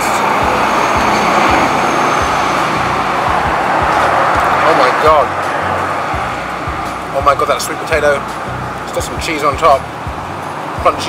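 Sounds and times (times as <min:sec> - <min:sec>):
truck driving past: 0:00.0 - 0:07.5
background music: 0:00.0 - 0:11.0
street traffic noise: 0:00.0 - 0:11.0.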